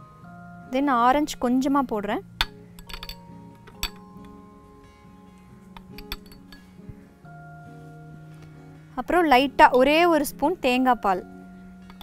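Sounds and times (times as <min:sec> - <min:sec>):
soft background music: 0:00.0 - 0:12.0
spoon clinking on glass: 0:02.4 - 0:04.4, 0:05.8 - 0:06.8.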